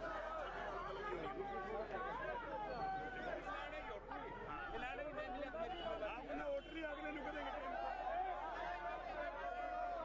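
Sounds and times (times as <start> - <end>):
crowd of protesters calling out: 0.0 - 10.0.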